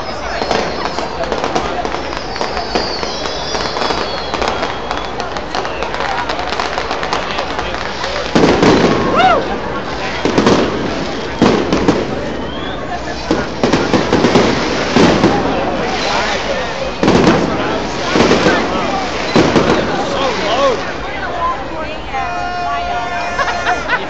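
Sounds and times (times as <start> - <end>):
fireworks booming: 0.0 - 21.6
crowd voices: 0.0 - 24.0.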